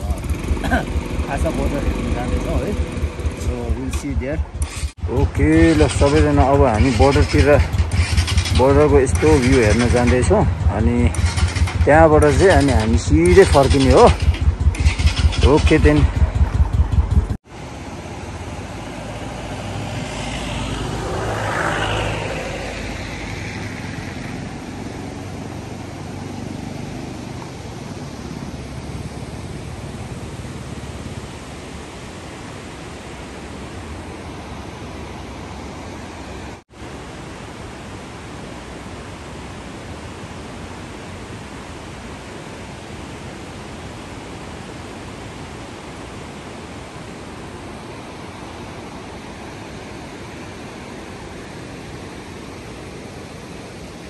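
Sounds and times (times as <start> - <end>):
motorcycle engine running: 0.0 - 31.3
vehicle passing by: 0.0 - 32.9
river and waterfall rushing: 0.0 - 54.0.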